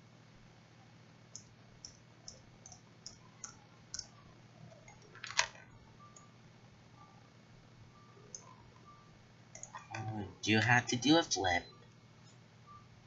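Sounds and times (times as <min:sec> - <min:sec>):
computer mouse clicking: 0:01.3 - 0:06.3, 0:09.5 - 0:10.1.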